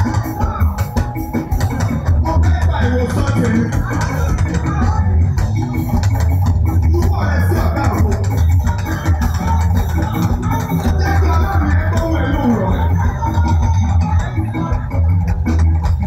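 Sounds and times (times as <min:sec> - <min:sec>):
heavy bass: 0:00.0 - 0:16.0
live gospel band: 0:00.0 - 0:16.0
people singing on microphones: 0:00.0 - 0:16.0.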